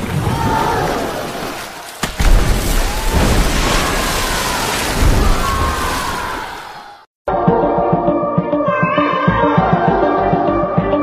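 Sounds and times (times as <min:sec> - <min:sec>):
heavy water splash: 0:00.0 - 0:07.1.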